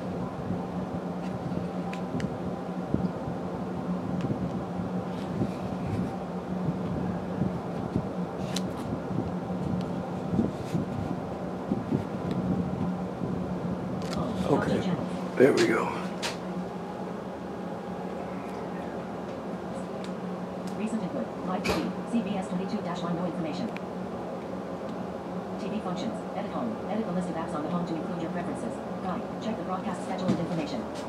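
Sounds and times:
low machine hum: 0.0s - 31.0s.

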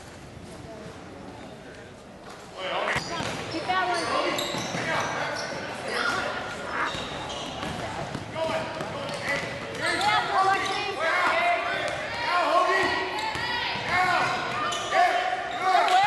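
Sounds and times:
basketball bouncing: 6.9s - 10.0s.

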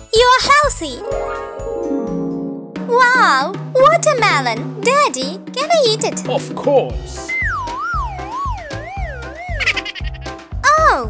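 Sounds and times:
children's background music: 0.0s - 11.0s
warbling siren-like cartoon tone: 7.8s - 9.7s.

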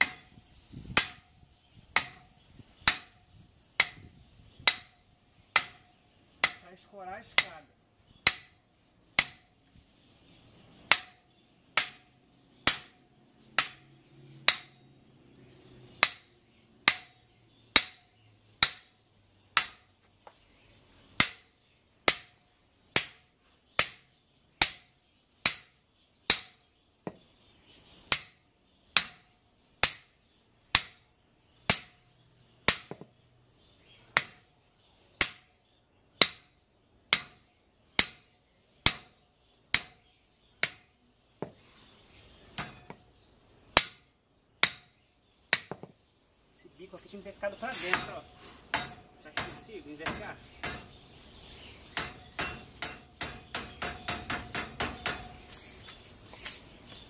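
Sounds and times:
hammer striking steel bar: 2.0s - 2.2s, 2.8s - 3.1s, 3.8s - 4.0s, 4.6s - 5.0s, 5.6s - 5.8s, 6.4s - 6.6s, 8.3s - 8.6s, 9.2s - 9.5s, 10.9s - 11.2s, 11.8s - 12.0s, 12.7s - 13.0s, 13.6s - 13.8s, 14.4s - 14.8s, 16.0s - 17.2s, 17.8s - 18.0s, 18.6s - 18.9s, 19.6s - 19.8s, 24.6s - 25.7s, 26.3s - 26.6s, 29.0s - 29.2s, 30.8s - 31.0s, 35.2s - 35.5s, 37.1s - 37.4s, 38.9s - 39.1s, 39.7s - 40.0s, 44.6s - 44.9s, 48.7s - 50.9s, 52.0s - 55.4s.

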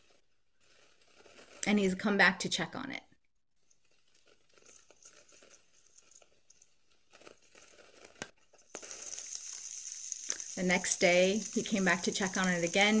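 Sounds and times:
leaf litter rustling and crackling: 0.0s - 2.0s, 3.8s - 13.0s
pouring rain hiss: 8.6s - 13.0s.

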